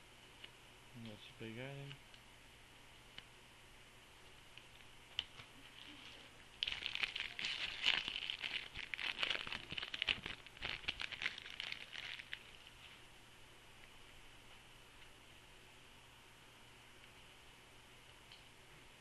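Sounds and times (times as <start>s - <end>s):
plastic wrapper crinkling and tearing: 5.7s - 12.8s.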